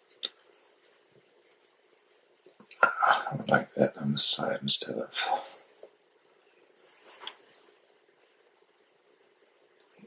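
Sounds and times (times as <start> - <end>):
faint soft hiss: 0.0 - 10.0.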